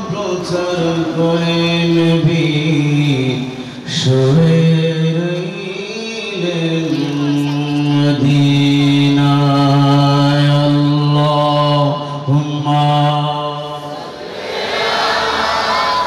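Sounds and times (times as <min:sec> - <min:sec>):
man chanting through microphones: 0:00.0 - 0:14.0
crowd calling out: 0:13.8 - 0:16.0.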